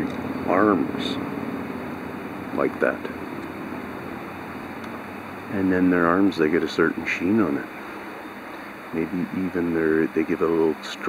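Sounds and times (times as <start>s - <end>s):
background rumble and hiss: 0.0s - 11.0s.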